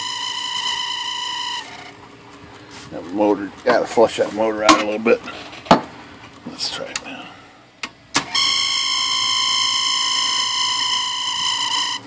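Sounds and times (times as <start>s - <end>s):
motor high-pitched squeal: 0.0s - 1.9s, 8.3s - 12.0s.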